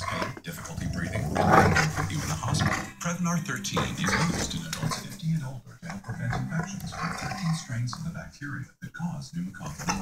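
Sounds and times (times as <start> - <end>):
dog growling: 0.0 - 2.9, 5.9 - 7.7.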